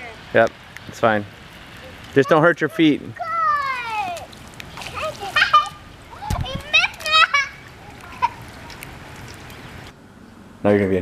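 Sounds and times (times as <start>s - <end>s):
children splashing water: 0.0s - 9.9s
hiss of rain: 0.0s - 10.6s
children shouting: 3.2s - 8.6s.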